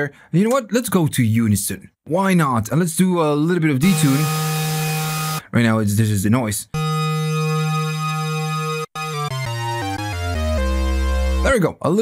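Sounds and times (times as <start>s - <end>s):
synthesizer lead note: 3.8s - 5.4s, 6.8s - 11.4s.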